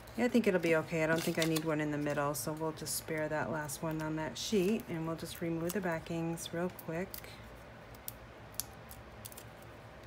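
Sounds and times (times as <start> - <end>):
paper backing peeling clicks: 1.0 - 2.2.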